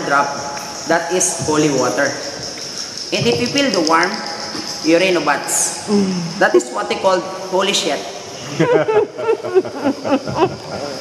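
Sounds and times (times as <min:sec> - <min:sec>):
laughter: 0:08.4 - 0:11.0.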